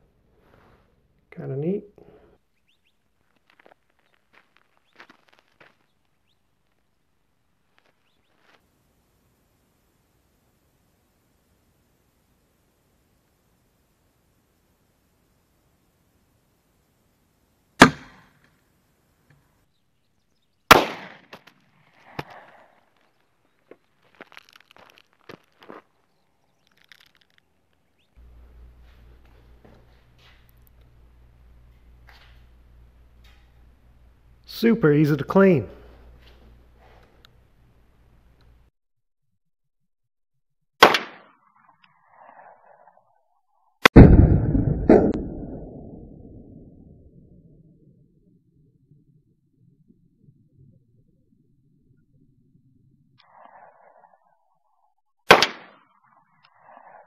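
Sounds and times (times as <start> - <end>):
rustles: 0.2 - 1.2, 2.0 - 10.0, 20.7 - 34.3
revolver shots: 17.8 - 18.4, 20.7 - 21.4, 55.3 - 55.8
revolver gunshots: 20.7 - 21.3, 40.8 - 41.2, 43.8 - 46.1, 55.3 - 55.8.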